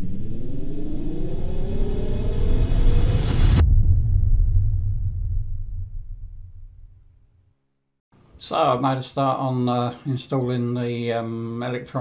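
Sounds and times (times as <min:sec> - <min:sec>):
rising riser effect: 0:00.0 - 0:07.2
deep rumble: 0:00.0 - 0:07.6.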